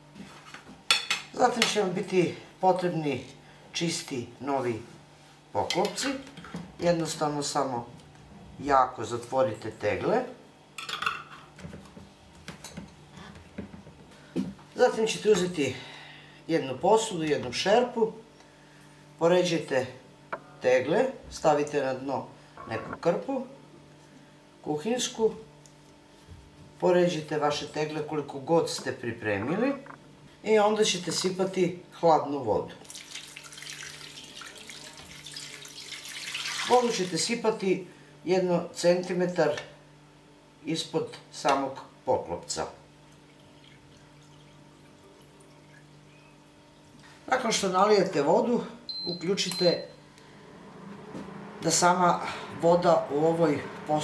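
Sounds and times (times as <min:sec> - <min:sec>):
water pouring into metal pot: 0:32.8 - 0:37.0.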